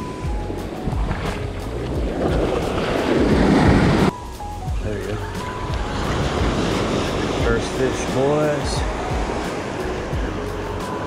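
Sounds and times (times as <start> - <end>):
waves washing in surf: 0.0 - 4.1, 5.2 - 11.0
wind on microphone: 0.0 - 4.1, 4.9 - 11.0
background music: 0.0 - 11.0.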